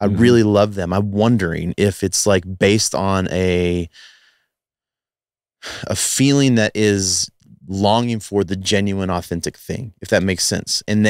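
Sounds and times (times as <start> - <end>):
man speaking: 0.0 - 4.1, 5.7 - 11.0
breathy exhale: 3.9 - 4.5.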